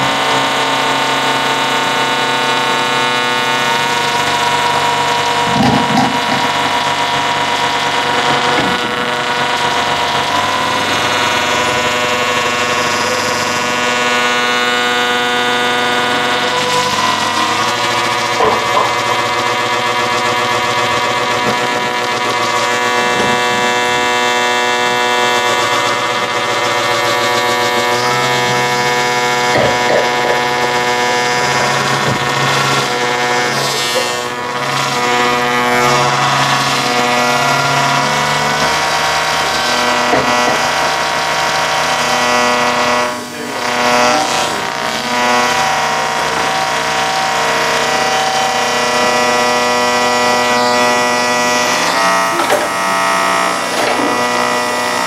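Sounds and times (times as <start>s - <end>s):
drill-played string instrument drone: 0.0s - 55.0s.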